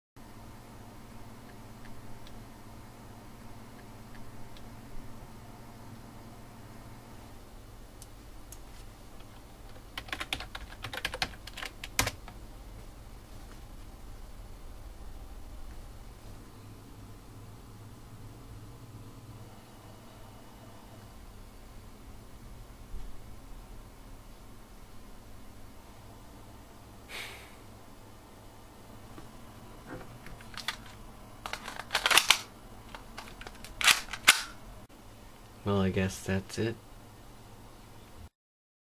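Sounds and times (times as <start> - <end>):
keyboard typing: 9.2 - 12.4
plastic toy parts clicking: 30.5 - 34.5.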